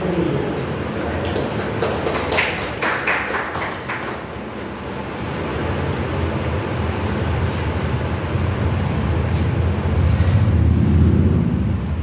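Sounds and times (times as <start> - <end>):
hand claps: 1.1 - 4.4.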